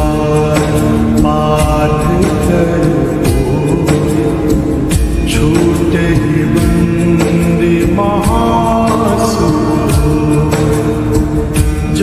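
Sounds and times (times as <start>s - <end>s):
instrumental accompaniment: 0.0s - 12.0s
percussion strokes: 0.0s - 12.0s.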